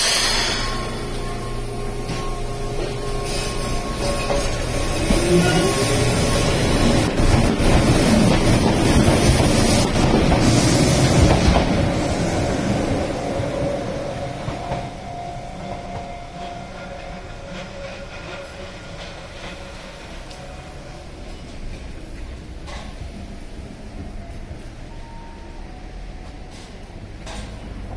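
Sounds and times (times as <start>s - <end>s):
electric train passing: 0.0s - 27.9s
wheels clattering on rails: 3.8s - 15.0s.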